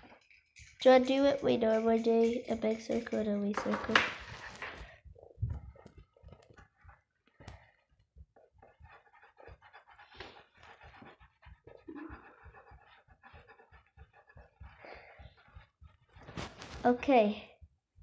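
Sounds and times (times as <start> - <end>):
pencil scratching on paper: 0.6 - 17.2
soft breathing: 4.7 - 16.4.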